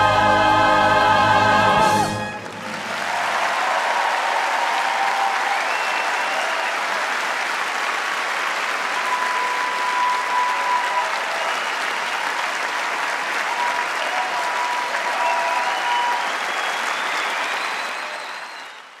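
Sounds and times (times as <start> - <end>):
audience applauding: 2.0 - 19.0.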